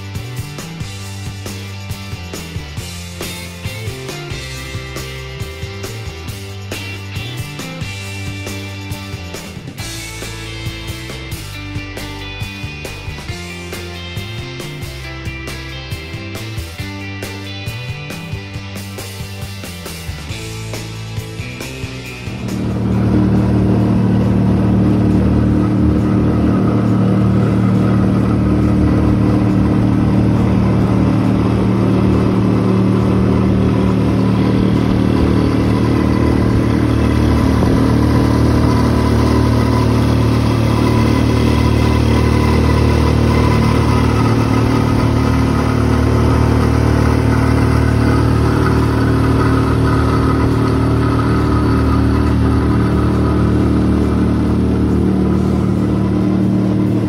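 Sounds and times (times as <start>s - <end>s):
outboard motor running: 0.0s - 57.0s
water rushing along hull: 21.8s - 57.0s.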